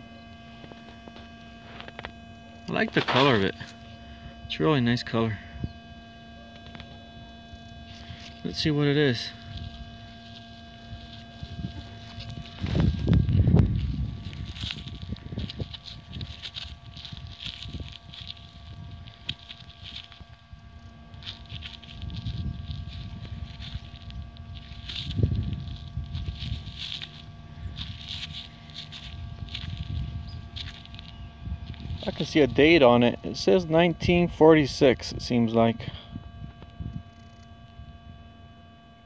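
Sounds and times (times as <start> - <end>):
scratchy rustles of scraping soil: 0.0 - 37.7.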